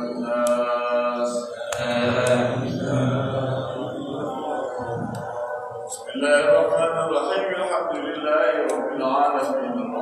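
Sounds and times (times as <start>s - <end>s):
men chanting religious recitation: 0.0s - 10.0s.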